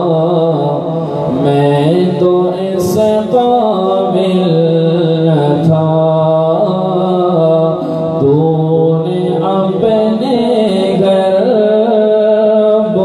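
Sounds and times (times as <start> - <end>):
man singing unaccompanied: 0.0 - 13.0.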